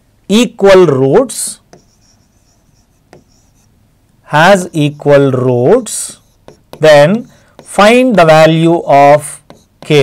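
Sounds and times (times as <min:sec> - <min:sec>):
marker squeaking on writing board: 0:01.2 - 0:03.8, 0:04.4 - 0:10.0.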